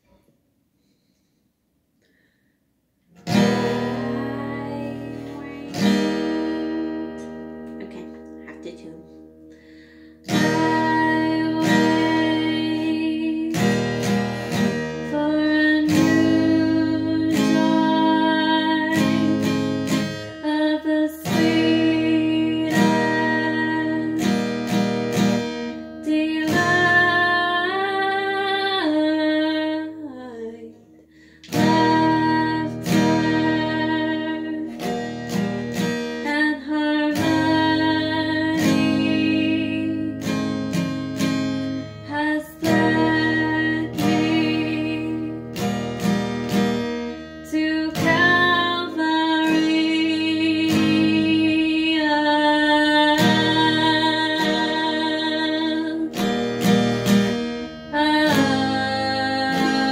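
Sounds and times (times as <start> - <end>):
acoustic guitar strumming chords: 3.1 - 59.9
woman singing: 3.3 - 9.1, 10.2 - 46.1, 47.4 - 59.9.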